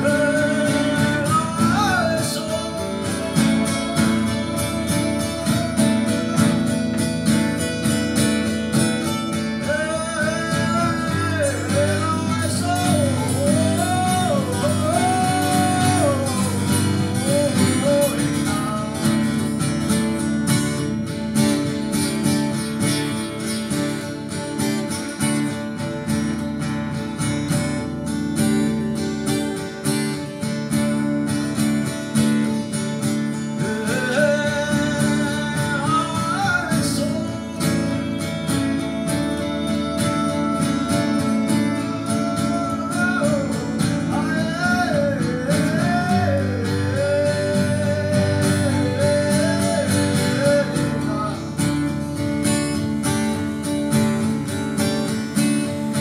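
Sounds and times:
man singing: 0:00.0 - 0:27.4, 0:28.3 - 0:56.0
acoustic guitars strummed and picked: 0:00.0 - 0:56.0.

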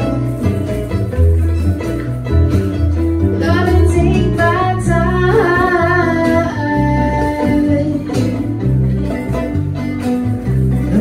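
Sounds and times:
acoustic strings and guitar: 0:00.0 - 0:11.0
woman singing: 0:03.3 - 0:08.7.

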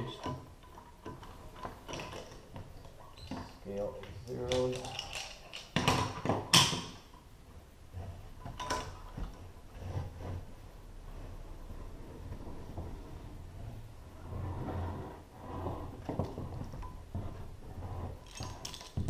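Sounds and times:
rope and hardware creaking: 0:00.0 - 0:06.3, 0:12.1 - 0:19.0.

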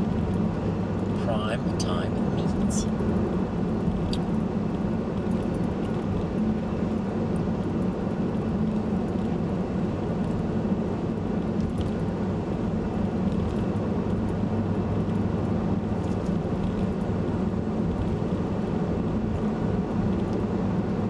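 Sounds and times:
car engine hum: 0:00.0 - 0:21.0.

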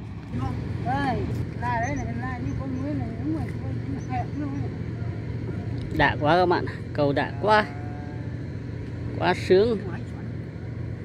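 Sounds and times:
steady low rumble: 0:00.0 - 0:11.0
quiet voices talking: 0:00.3 - 0:10.6.

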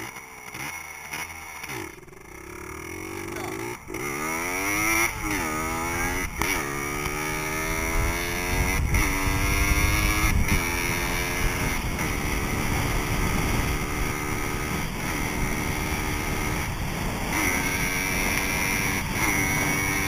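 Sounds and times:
dirt bike engine revving: 0:00.0 - 0:20.0
wind rumble on microphone: 0:04.5 - 0:20.0.

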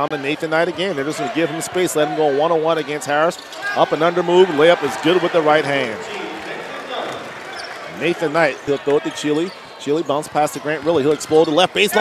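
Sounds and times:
crowd murmur: 0:01.0 - 0:10.6.

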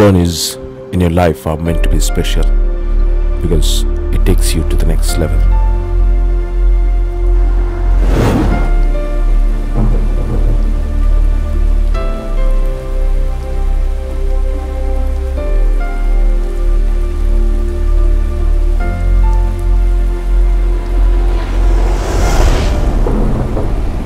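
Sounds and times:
slow cinematic music: 0:00.0 - 0:24.0
rain falling: 0:01.8 - 0:24.0.

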